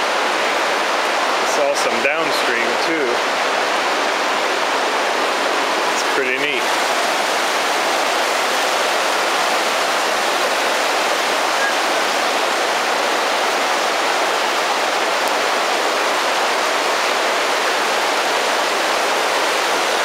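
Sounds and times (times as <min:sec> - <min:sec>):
river rushing over cobbles: 0:00.0 - 0:20.0.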